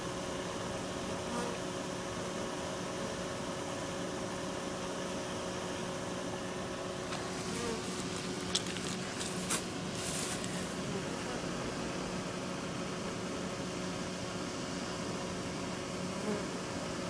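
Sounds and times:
bee swarm buzzing: 6.8s - 17.0s.

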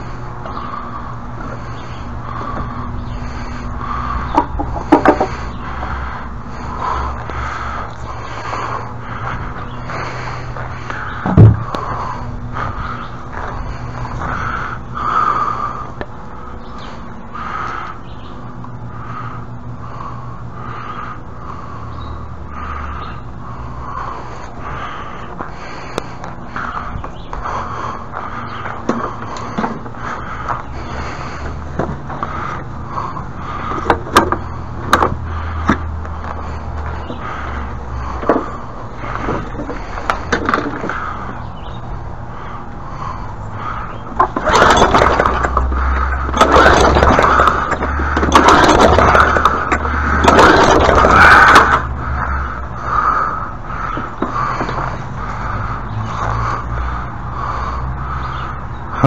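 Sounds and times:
steady low hum: 0.0s - 59.0s
lawn mower scraping and rattling: 43.7s - 56.3s.

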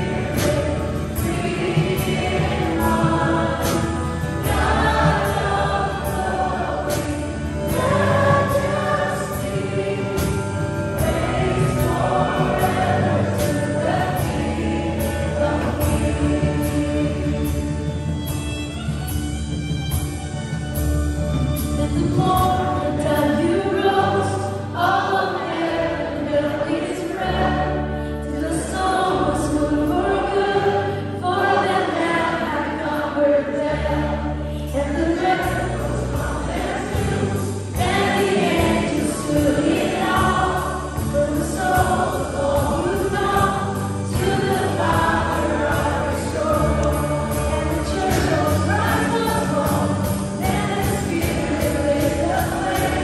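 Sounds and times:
bass guitar line: 0.0s - 53.0s
worship band playing: 0.0s - 53.0s.

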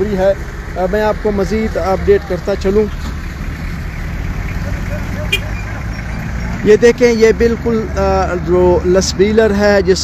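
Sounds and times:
low rumble of road traffic: 0.0s - 10.0s.

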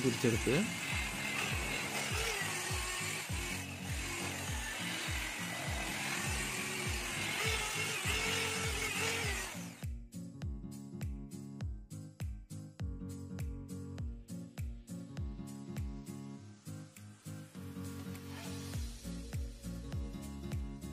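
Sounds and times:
electric car polisher whirring: 0.0s - 9.8s
background music with beat: 0.5s - 20.9s.

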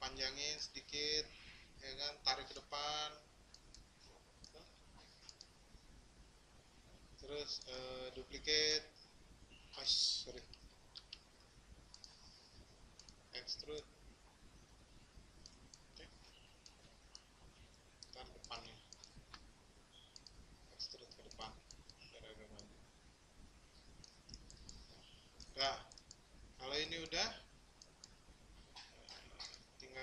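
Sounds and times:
computer mouse clicks: 3.5s - 5.6s, 10.4s - 12.4s, 13.0s - 13.8s, 15.4s - 22.8s, 23.8s - 26.2s.

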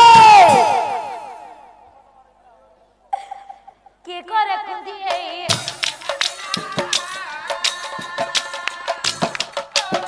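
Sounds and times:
woman's high held cry: 0.0s - 1.8s.

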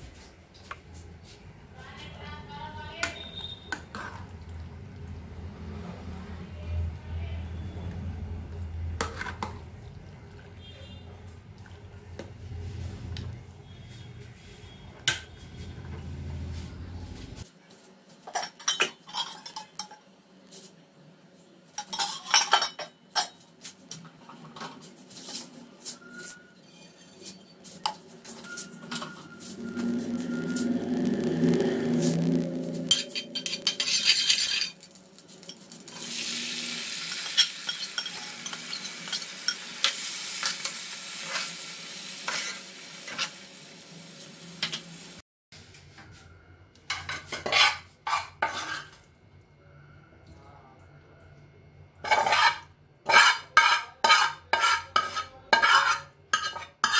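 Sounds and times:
metal spatula scraping a pan: 3.0s - 4.3s, 9.0s - 9.6s, 24.4s - 43.5s, 46.9s - 49.1s, 52.0s - 56.9s
steel utensils clinking: 21.8s - 23.4s, 32.9s - 36.1s, 37.0s - 41.6s.

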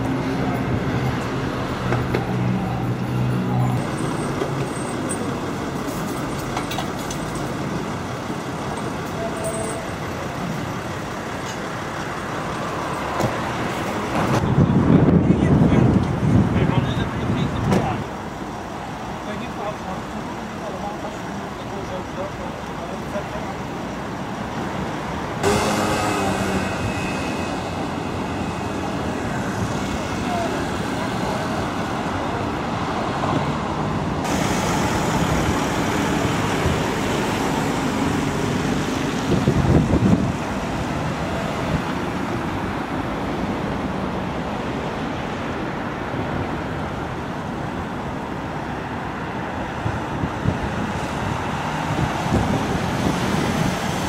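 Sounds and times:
road vehicles and engines: 0.0s - 54.0s.

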